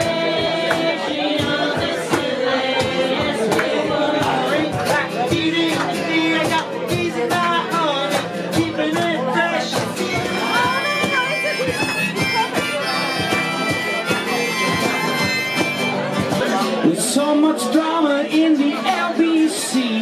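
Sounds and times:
strummed acoustic guitars: 0.0s - 20.0s
sliding lead melody: 10.0s - 16.2s.

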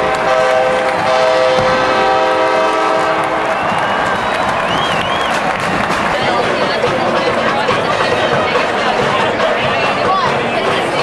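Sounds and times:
horn chord blasts: 0.0s - 3.6s
stadium crowd noise: 0.0s - 11.0s.

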